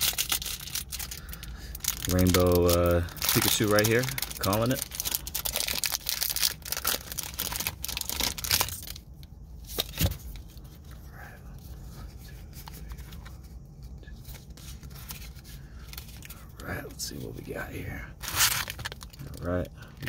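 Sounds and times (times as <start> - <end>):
foil wrapper crinkling and tearing: 0.0 - 10.1, 18.2 - 19.6
cards being handled: 11.9 - 16.4.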